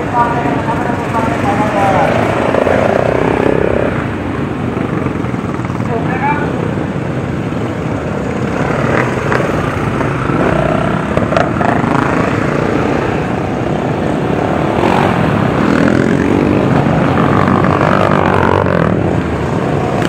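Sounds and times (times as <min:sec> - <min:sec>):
dirt bike engines droning: 0:00.0 - 0:20.0
dirt bikes revving: 0:00.0 - 0:20.0.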